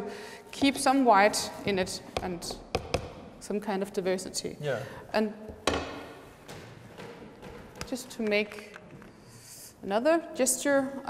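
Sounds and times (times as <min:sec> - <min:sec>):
plastic containers tapping: 0:05.5 - 0:09.1.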